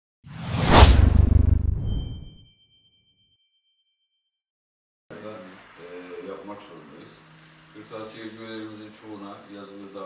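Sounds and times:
whoosh: 0:00.3 - 0:02.5
deep rumble: 0:00.7 - 0:02.3
thin high ringing tone: 0:01.8 - 0:03.7.

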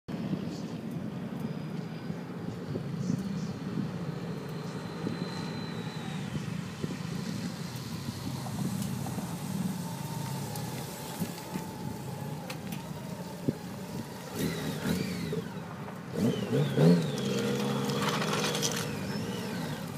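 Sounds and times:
motorcycle engine passing by: 0:12.8 - 0:19.9.

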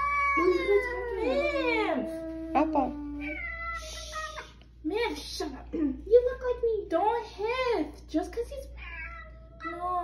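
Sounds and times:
cat yowling: 0:00.0 - 0:03.9.

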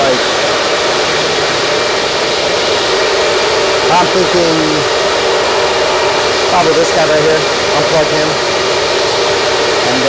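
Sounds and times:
cooling fans rushing and humming: 0:00.0 - 0:10.0.

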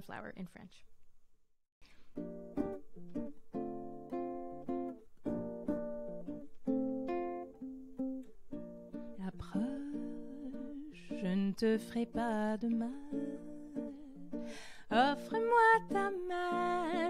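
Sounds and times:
ukulele plucked chords: 0:01.9 - 0:17.0.

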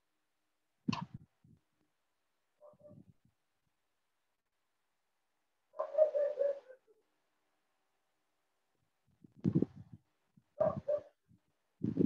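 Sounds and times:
animal call: 0:05.8 - 0:07.0.

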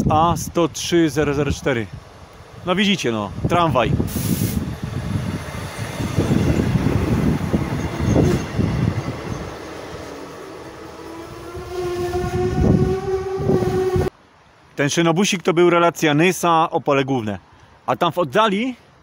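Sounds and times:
train wheels rumbling on rails: 0:03.3 - 0:14.1
steady rising tone: 0:04.8 - 0:14.1.

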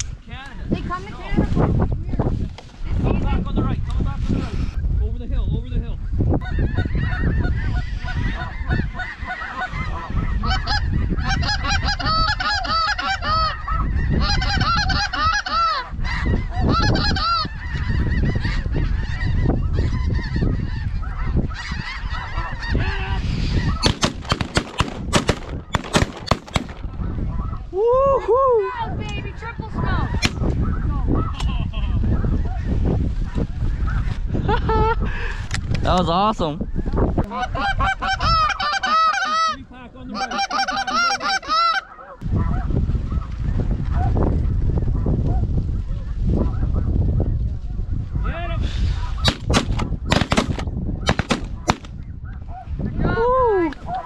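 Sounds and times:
geese honking: 0:06.4 - 0:24.4, 0:37.3 - 0:42.6
shotgun blasts: 0:23.8 - 0:27.0, 0:30.2 - 0:30.4, 0:49.2 - 0:52.0.

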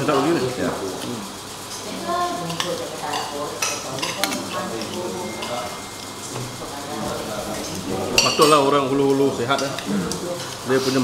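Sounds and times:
cutlery scraping on plates: 0:02.5 - 0:11.0.

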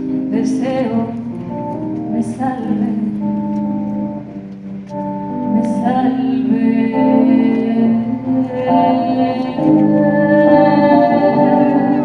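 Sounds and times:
electric guitar chords: 0:00.0 - 0:12.0
person singing: 0:05.4 - 0:12.0.

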